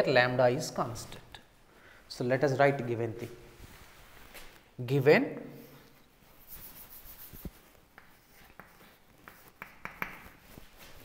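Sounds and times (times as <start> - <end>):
chalk tapping and scraping on chalkboard: 5.5 - 11.0.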